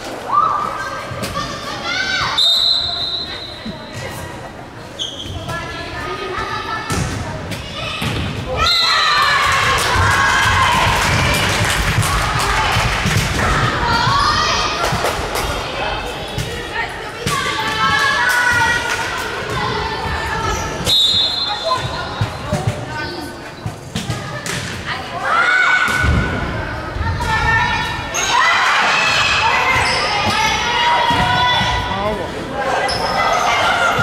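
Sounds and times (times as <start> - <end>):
people shouting and cheering: 7.8 - 22.2, 24.9 - 34.0.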